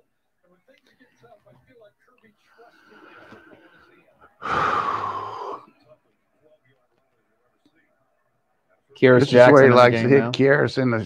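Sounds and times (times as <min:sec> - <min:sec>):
person exhaling loudly: 0:04.4 - 0:05.7.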